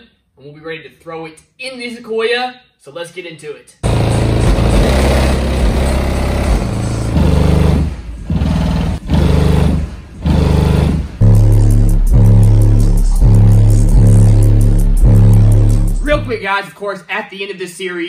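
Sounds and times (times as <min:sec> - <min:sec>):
bass-heavy music from subwoofers: 0:03.8 - 0:07.9, 0:08.6 - 0:16.4.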